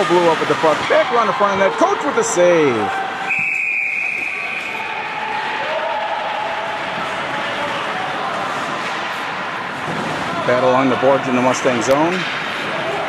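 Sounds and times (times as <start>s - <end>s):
referee's whistle blast: 3.3s - 4.9s.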